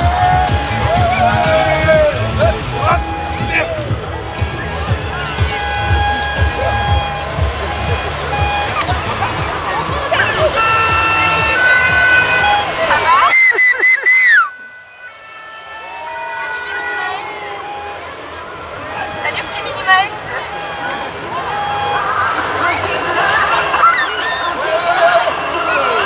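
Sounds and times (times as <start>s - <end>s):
music from loudspeakers: 0.0s - 13.8s
engine rumble: 0.0s - 26.0s
spectators shouting: 0.0s - 26.0s
falling whistle: 10.2s - 18.1s, 18.9s - 22.4s.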